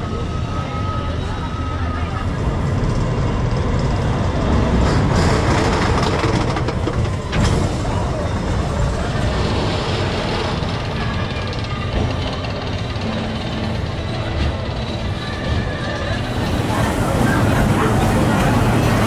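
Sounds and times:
roller coaster rumbling on track: 0.0s - 19.0s.

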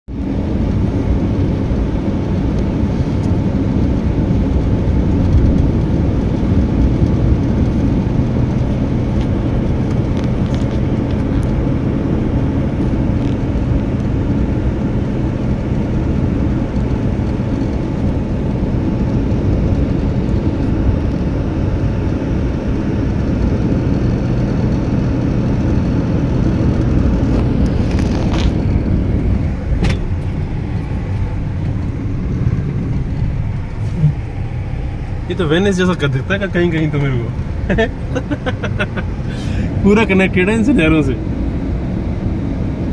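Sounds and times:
car road and engine noise: 0.1s - 42.9s.

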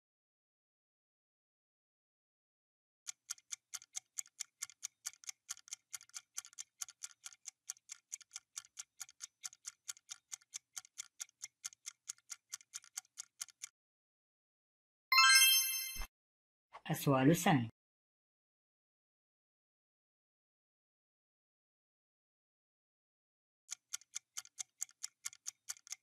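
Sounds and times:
bright chime: 15.1s - 16.1s.

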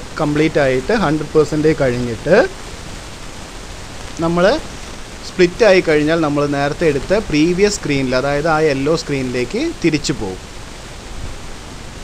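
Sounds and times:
steady background hiss: 0.0s - 12.0s
man saying a syllable: 5.3s - 10.4s.

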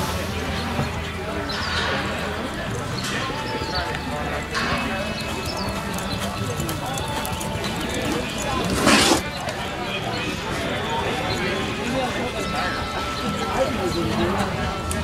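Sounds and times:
people talking: 0.0s - 15.0s
horse hoofbeats on dirt: 2.7s - 9.5s.

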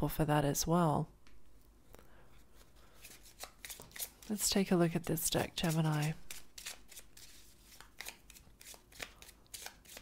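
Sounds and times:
cards being shuffled: 2.6s - 4.4s, 5.3s - 10.0s.

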